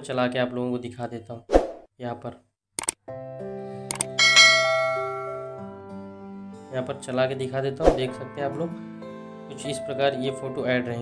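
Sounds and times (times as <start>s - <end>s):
mouse clicks: 2.8s - 3.0s, 3.9s - 4.2s
bright bell chime: 4.2s - 5.7s.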